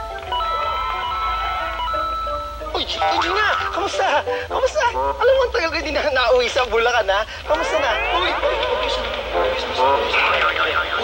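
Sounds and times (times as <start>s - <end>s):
people talking and calling out: 7.2s - 11.0s.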